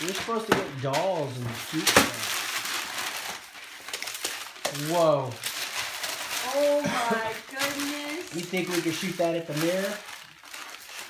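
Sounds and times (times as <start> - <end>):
wrapping paper crumpling: 0.0 - 11.0.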